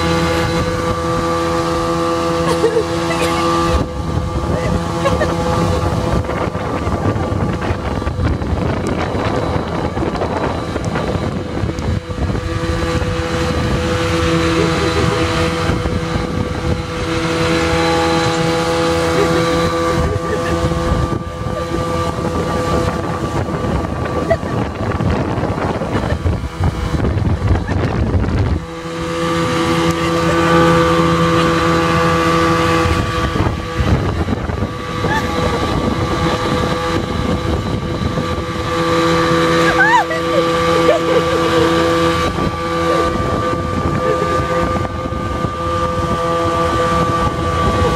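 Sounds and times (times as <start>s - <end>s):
outboard motor running: 0.0s - 47.9s
water rushing: 0.0s - 47.9s
wind buffeting microphone: 0.0s - 47.9s.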